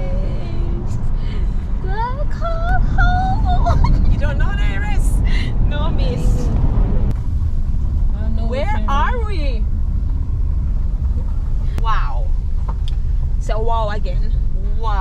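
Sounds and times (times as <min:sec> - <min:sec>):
car road and engine rumble: 0:00.0 - 0:15.0.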